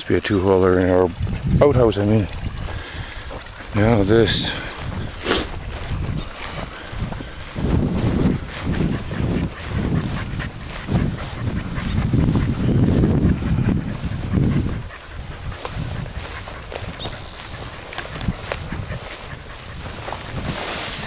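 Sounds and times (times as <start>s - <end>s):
wind buffeting microphone: 0.0s - 21.0s
footsteps through tall grass: 2.4s - 21.0s.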